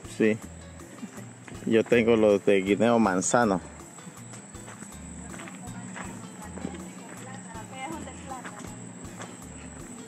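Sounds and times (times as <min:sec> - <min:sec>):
footsteps on dirt path: 0:00.6 - 0:10.0.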